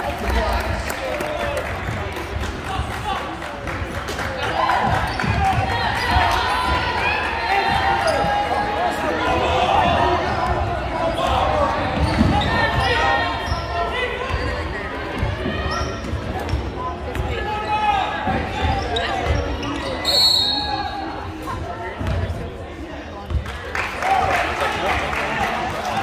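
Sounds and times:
crowd chatter: 0.0s - 26.0s.

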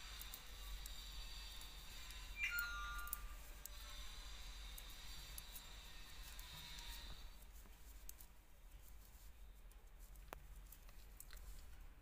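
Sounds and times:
knitting needles clicking: 0.0s - 4.0s, 4.7s - 11.9s
high two-note tone: 2.4s - 3.3s.

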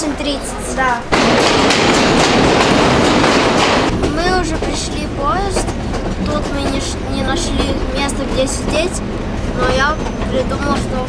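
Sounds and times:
train carriage rumble and rattle: 0.0s - 11.0s.

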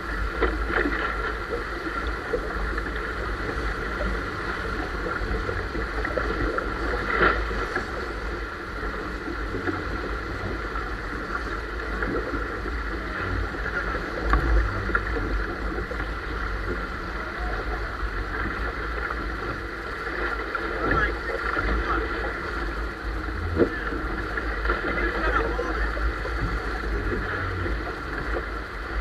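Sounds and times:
water rushing along a hull: 0.0s - 29.0s.

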